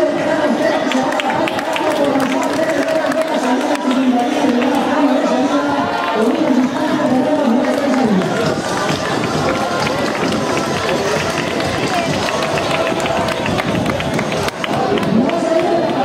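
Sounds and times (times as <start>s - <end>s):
crowd chatter: 0.0s - 16.0s
runners' footsteps on asphalt: 5.9s - 16.0s.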